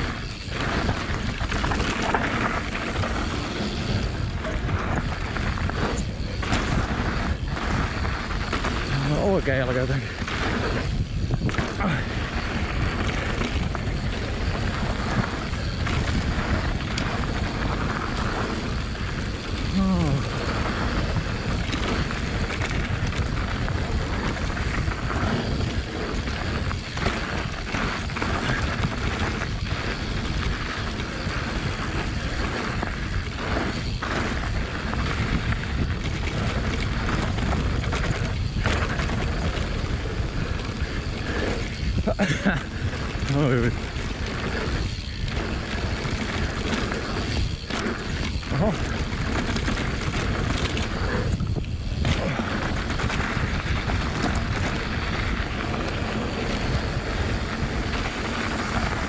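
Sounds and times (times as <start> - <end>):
tyres rumbling on gravel: 0.0 - 59.0
wind buffeting microphone: 0.0 - 59.0.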